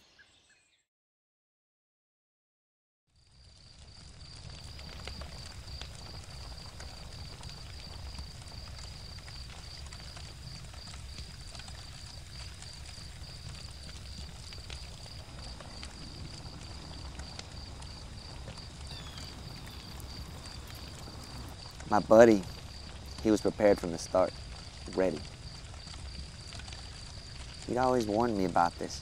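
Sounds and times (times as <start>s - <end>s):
campfire crackles: 3.1s - 29.0s
crickets trilling: 3.2s - 29.0s
low rumble: 13.8s - 27.7s.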